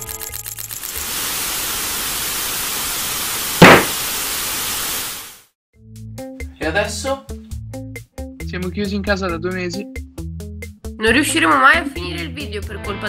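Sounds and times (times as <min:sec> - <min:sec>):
music: 0:00.0 - 0:00.7, 0:05.7 - 0:13.0
loud static burst: 0:01.1 - 0:05.2.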